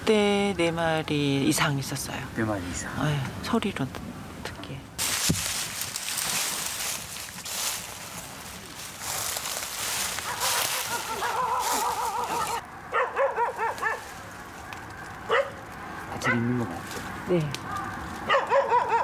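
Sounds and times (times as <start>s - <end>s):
dry leaves and branches rustling: 5.0s - 18.8s
dog barking: 10.2s - 14.0s, 15.3s - 15.6s, 16.2s - 16.6s, 17.7s - 19.0s.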